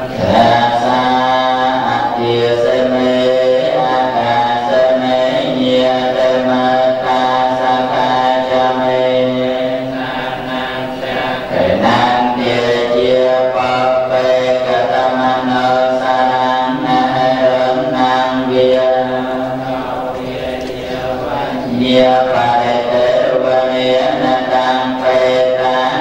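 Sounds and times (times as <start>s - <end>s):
monks chanting in unison: 0.0s - 26.0s.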